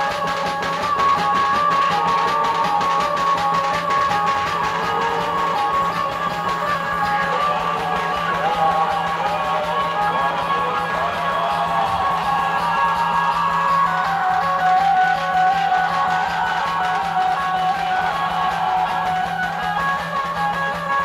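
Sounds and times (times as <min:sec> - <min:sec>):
amplified band melody: 0:00.0 - 0:21.0.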